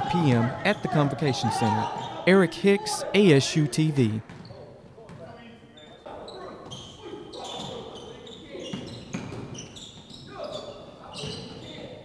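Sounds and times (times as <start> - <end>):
players calling out: 0.0 - 4.5
sneaker squeaks: 0.2 - 2.3, 4.2 - 12.0.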